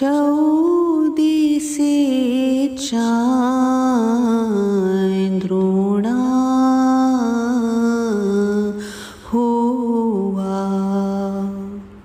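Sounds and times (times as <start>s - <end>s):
woman chanting: 0.0s - 12.0s.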